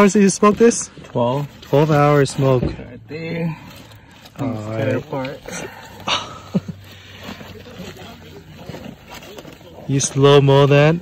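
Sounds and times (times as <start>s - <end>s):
aluminium foil crinkling: 0.0s - 11.0s
steady background noise: 0.0s - 11.0s.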